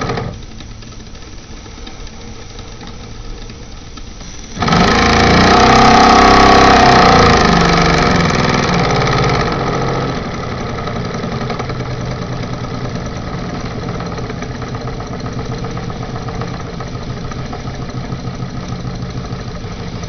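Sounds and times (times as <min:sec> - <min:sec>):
toy steam engine running: 0:00.0 - 0:20.0.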